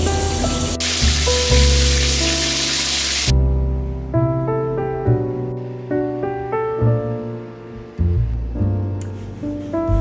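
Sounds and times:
shower water spraying: 0.0 - 3.3
piano music: 0.0 - 10.0.

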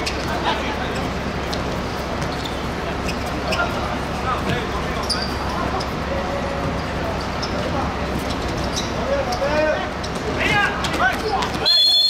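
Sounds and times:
players shouting: 9.0 - 12.0.

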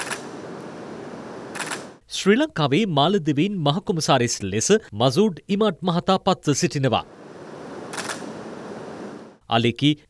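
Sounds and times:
camera shutters clicking: 0.0 - 0.3, 1.5 - 2.0, 7.9 - 8.4
room noise hiss: 0.0 - 2.0, 6.7 - 9.9.

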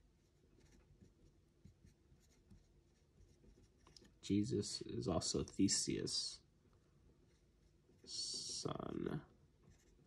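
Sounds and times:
marker scratching on whiteboard: 0.0 - 4.2, 7.2 - 8.7, 9.6 - 10.0.

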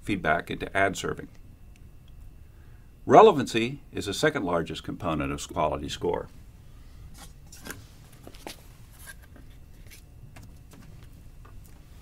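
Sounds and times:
paper cutout rustling and scraping: 7.2 - 10.1.

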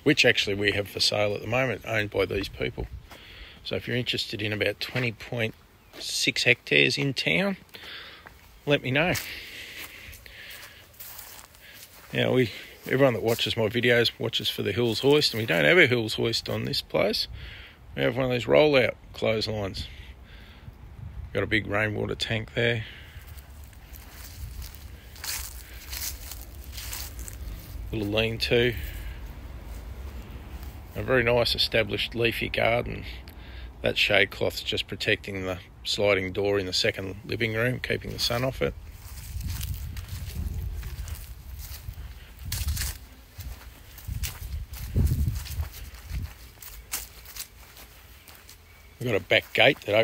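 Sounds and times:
footsteps in a garden: 0.0 - 50.0
low wind rumble: 18.9 - 21.8, 22.4 - 32.6, 38.0 - 46.9.

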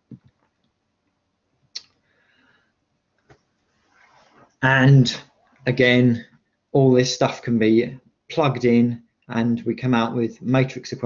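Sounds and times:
person speaking: 4.6 - 11.0.

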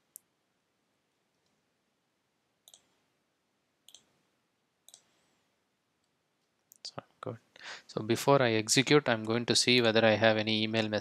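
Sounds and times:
computer mouse clicks: 2.6 - 3.0, 3.8 - 4.1, 4.8 - 5.2.

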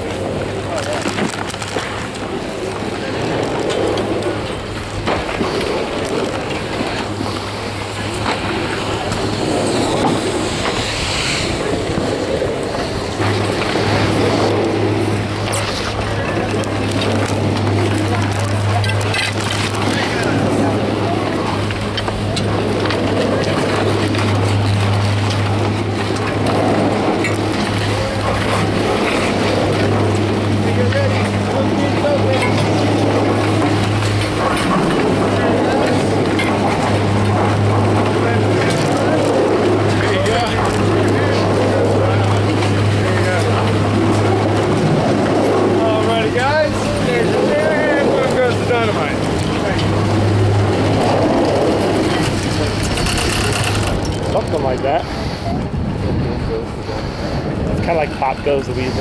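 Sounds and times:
chairlift machinery hum: 0.0 - 59.0.

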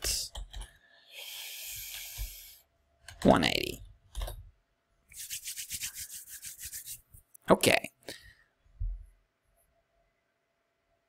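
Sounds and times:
rapid light scratching strokes: 5.1 - 7.2.

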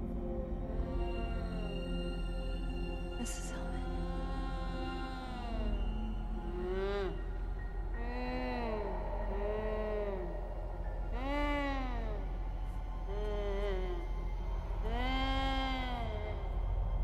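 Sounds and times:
low steady drone: 0.0 - 17.0.

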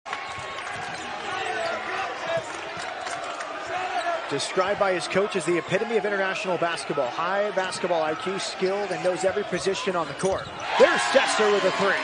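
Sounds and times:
crowd hubbub: 0.1 - 12.0
basketball bouncing on court: 0.2 - 3.7.

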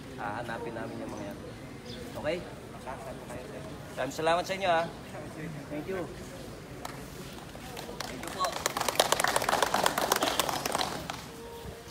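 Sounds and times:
group applauding: 7.7 - 11.4.

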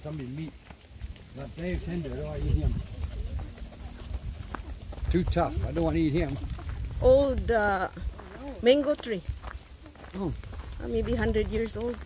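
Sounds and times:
footsteps on a path: 0.0 - 12.0
wind rumbling on microphone: 0.1 - 12.0.

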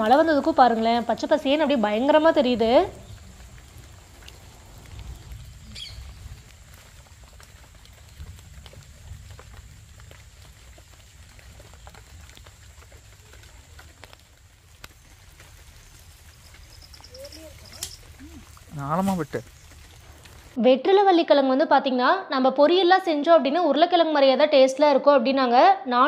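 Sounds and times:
leaves rustling: 0.0 - 20.6
leaves snapping: 10.8 - 20.6.

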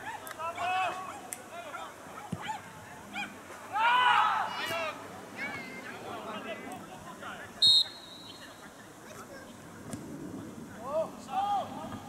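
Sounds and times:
people shouting: 3.7 - 5.0.

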